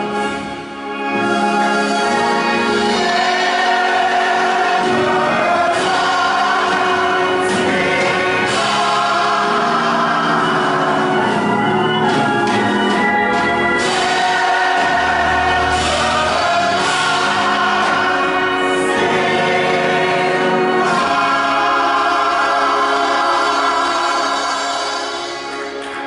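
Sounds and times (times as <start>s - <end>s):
choir singing gospel: 0.0s - 26.0s.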